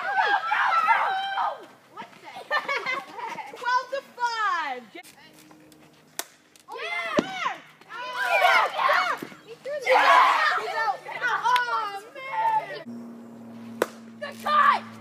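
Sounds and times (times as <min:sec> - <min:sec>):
boys shouting and cheering: 0:00.0 - 0:04.8, 0:06.7 - 0:12.9, 0:14.2 - 0:15.0.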